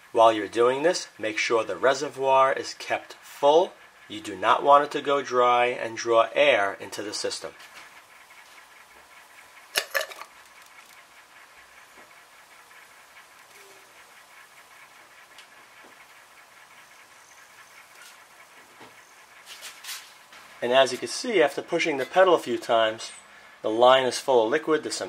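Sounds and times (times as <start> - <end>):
faint ticks: 13.1 - 16.1.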